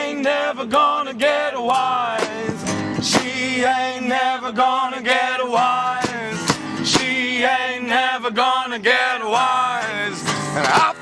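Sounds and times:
acoustic bass guitar: 0:00.0 - 0:11.0
acoustic guitar: 0:00.0 - 0:11.0
man singing: 0:00.0 - 0:11.0.

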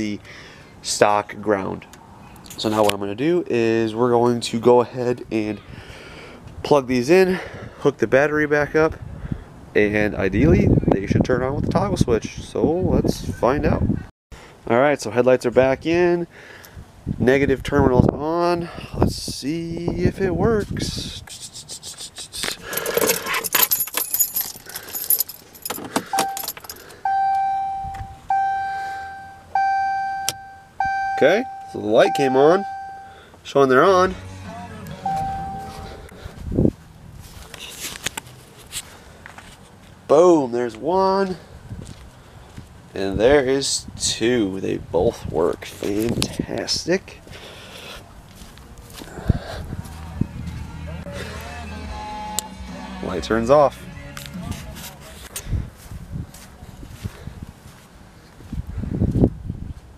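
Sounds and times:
keys jangling: 0:22.5 - 0:27.0
dashboard warning chime: 0:26.1 - 0:33.2, 0:33.8 - 0:36.0, 0:51.6 - 0:52.8
steady low hum: 0:49.0 - 0:55.1.

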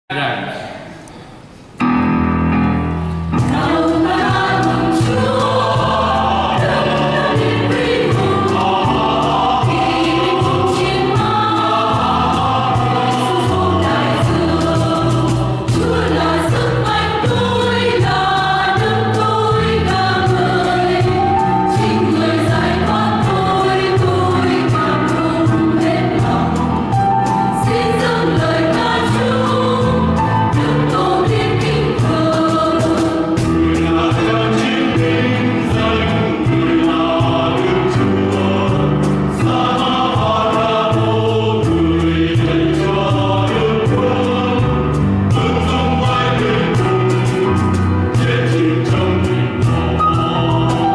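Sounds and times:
low keyboard accompaniment: 0:00.1 - 0:50.9
choir singing a hymn: 0:03.3 - 0:50.9.

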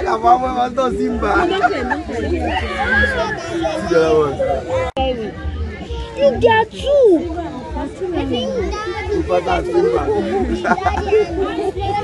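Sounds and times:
voices talking and calling out: 0:00.0 - 0:12.0
excited children's chatter: 0:01.2 - 0:12.0.

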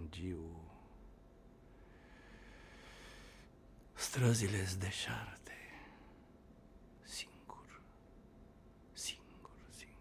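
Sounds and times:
breathy hisses from man's voice: 0:01.9 - 0:03.5.

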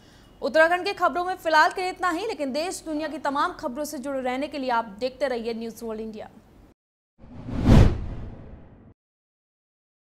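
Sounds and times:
whoosh: 0:07.2 - 0:08.9.

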